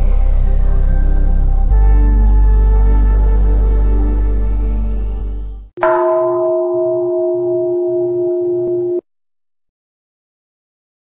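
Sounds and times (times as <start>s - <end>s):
bowl bell ringing: 5.8s - 9.0s.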